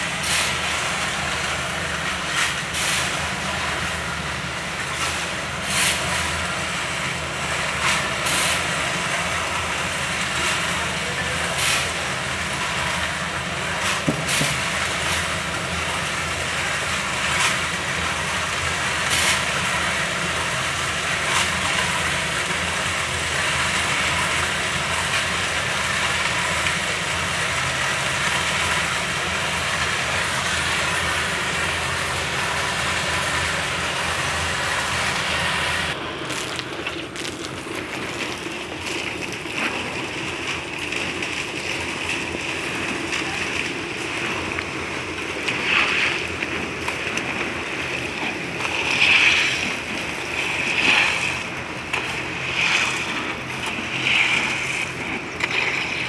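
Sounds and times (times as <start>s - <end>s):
concrete mixer running: 0.0s - 56.0s.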